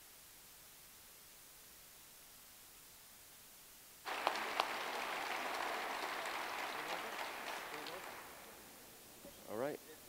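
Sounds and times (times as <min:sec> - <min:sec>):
audience applause: 0:04.1 - 0:08.8.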